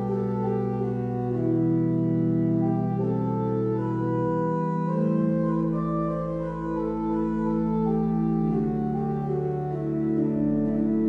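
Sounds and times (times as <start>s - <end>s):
organ playing sustained chords: 0.0s - 11.0s.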